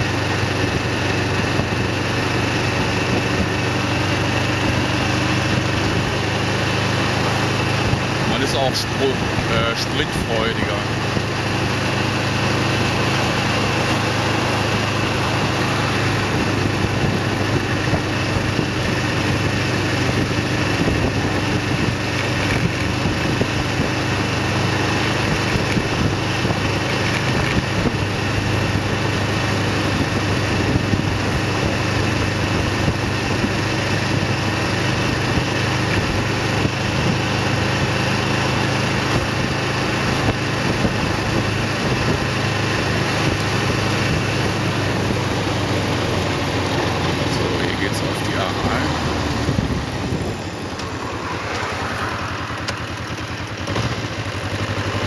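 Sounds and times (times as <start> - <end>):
motorcycle engine running steadily: 0.0 - 55.0
wind and road noise: 0.0 - 55.0.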